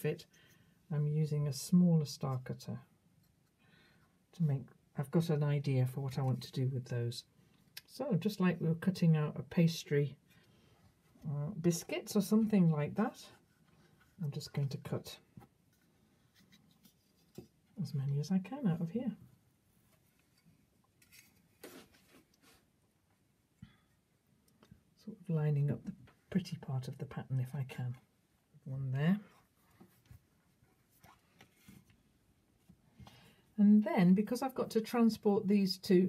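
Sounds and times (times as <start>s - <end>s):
hands scraping and rustling: 19.8s - 22.8s.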